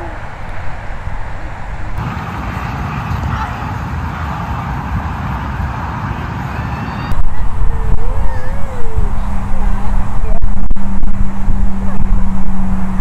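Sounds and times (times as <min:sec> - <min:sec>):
steady low hum: 0:00.0 - 0:13.0
wind buffeting microphone: 0:00.0 - 0:13.0
wavering high vocal call: 0:06.6 - 0:10.4.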